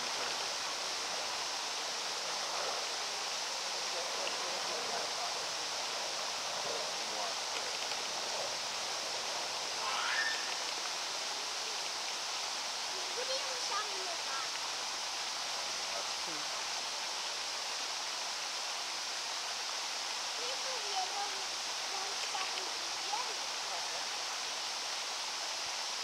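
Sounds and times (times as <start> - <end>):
distant voices murmuring: 0.0 - 12.1
rushing hiss like running water: 0.0 - 26.0
rising call: 9.8 - 10.7.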